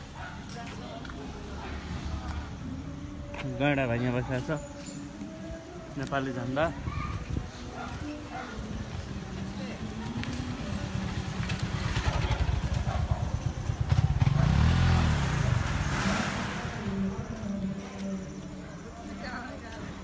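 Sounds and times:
motorcycle passing by: 9.7s - 17.7s.

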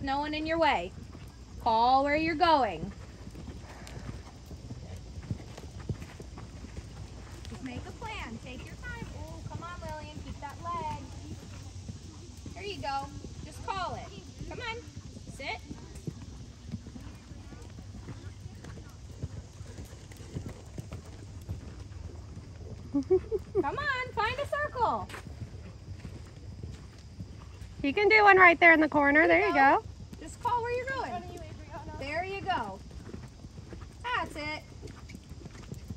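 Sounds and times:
horse hooves cantering on sand: 0.0s - 35.9s
voices talking: 1.6s - 2.9s, 7.3s - 20.1s, 23.0s - 25.2s, 27.8s - 32.8s.

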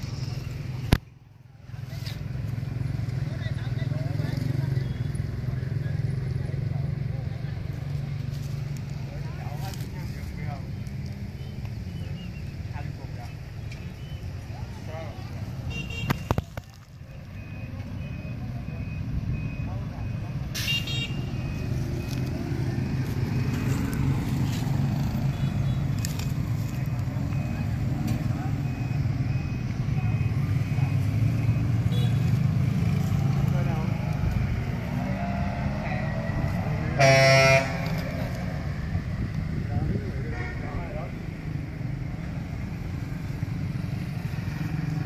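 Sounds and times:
road traffic rumble: 0.0s - 45.0s
vehicle horn: 15.7s - 16.4s, 20.6s - 21.3s, 31.8s - 32.4s, 36.9s - 38.2s, 40.2s - 40.8s.

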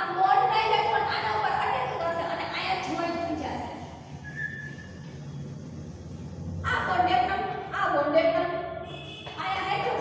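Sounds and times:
chalk squeaking on chalkboard: 2.2s - 5.8s.

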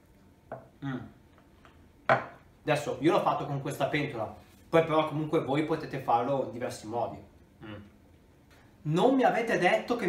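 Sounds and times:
man humming with mouth full: 0.8s - 1.2s, 7.6s - 7.9s.

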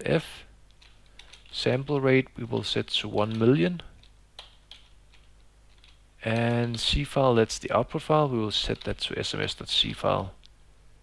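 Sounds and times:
keyboard keystrokes: 2.6s - 7.0s.

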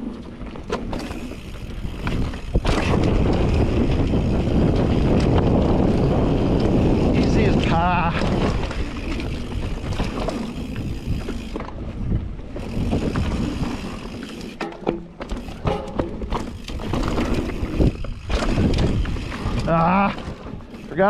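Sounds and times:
wind buffeting microphone: 0.0s - 14.4s, 15.3s - 21.0s
bike rattling and knocking: 0.0s - 21.0s
tyres rolling over dirt: 0.0s - 21.0s.

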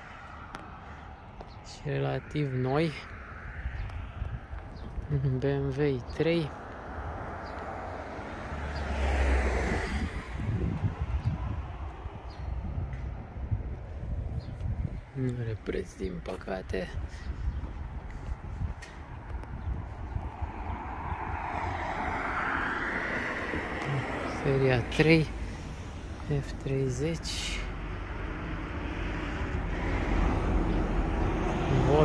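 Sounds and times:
car passing: 0.0s - 13.2s, 16.7s - 32.0s
low rumble: 9.4s - 15.6s.

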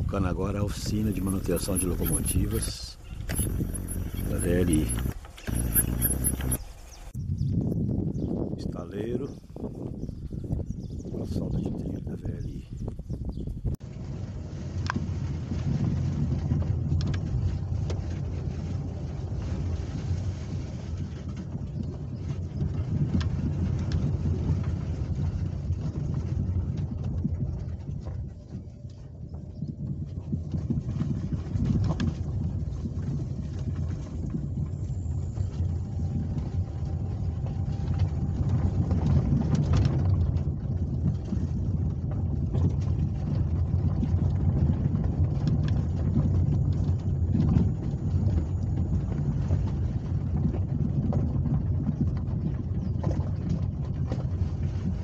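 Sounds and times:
car engine and road rumble: 0.0s - 7.2s, 13.8s - 55.0s.

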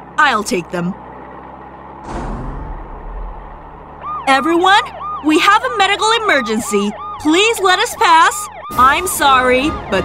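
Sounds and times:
low vehicle rumble: 0.0s - 10.0s.

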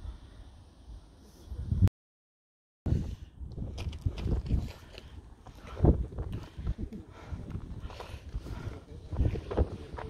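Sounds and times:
wind buffeting microphone: 2.9s - 10.0s.

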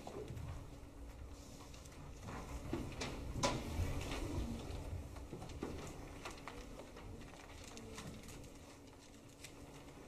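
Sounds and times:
low steady hum: 0.0s - 10.0s
pages turning: 6.1s - 10.0s.

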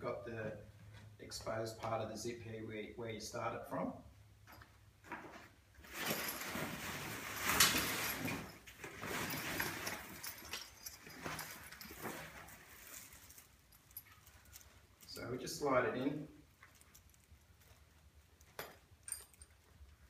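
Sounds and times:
canvas rustling: 5.4s - 15.2s.

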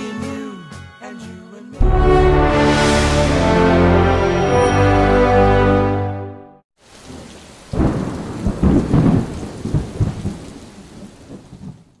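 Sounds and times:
steady rain: 6.8s - 12.0s
thunder rumble: 7.0s - 12.0s.

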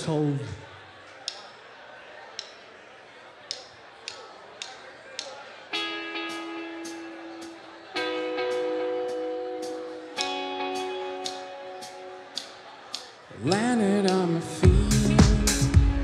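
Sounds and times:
held guitar and synth chords: 5.7s - 16.0s
live rock band playing: 5.8s - 12.6s, 13.5s - 16.0s.

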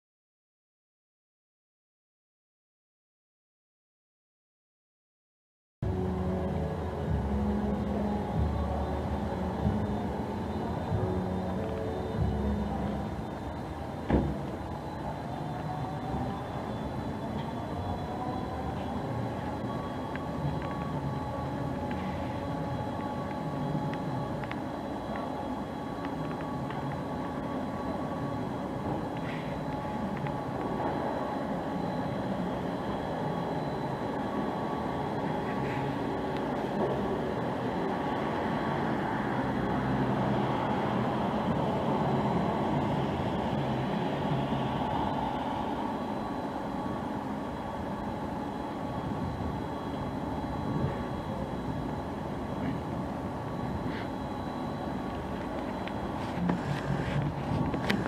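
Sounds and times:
ride mechanical hum with whine: 5.8s - 58.0s
urban background rumble: 5.8s - 58.0s.

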